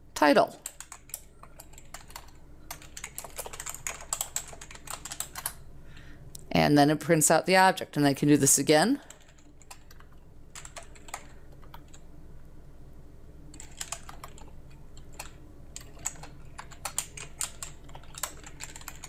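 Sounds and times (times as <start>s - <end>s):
computer keyboard typing: 0.6s - 5.6s, 9.1s - 12.0s, 13.5s - 19.0s.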